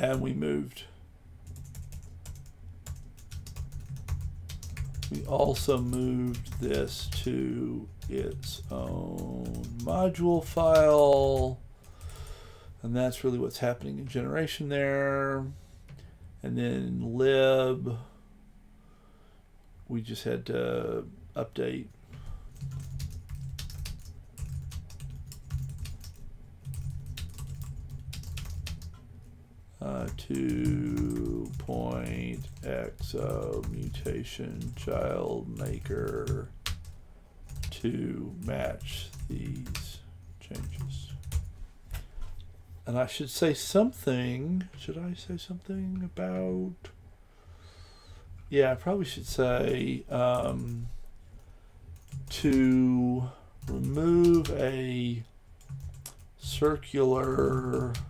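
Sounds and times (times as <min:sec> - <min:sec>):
low steady hum: 0:00.0 - 0:58.0
computer keyboard typing: 0:01.4 - 0:12.3, 0:22.6 - 0:29.0, 0:29.9 - 0:39.9, 0:40.5 - 0:42.0, 0:52.0 - 0:52.8, 0:53.6 - 0:54.9, 0:55.6 - 0:58.0.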